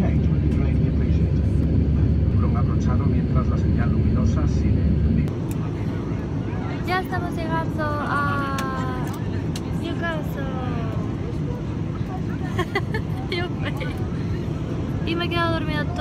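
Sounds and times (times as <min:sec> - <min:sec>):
airliner cabin drone: 0:00.0 - 0:16.0
voices: 0:05.5 - 0:16.0.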